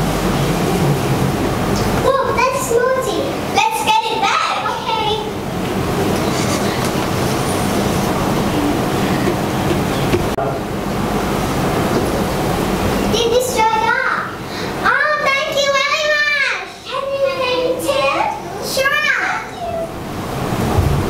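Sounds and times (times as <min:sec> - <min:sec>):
steady rushing noise: 0:00.0 - 0:14.9, 0:19.8 - 0:21.0.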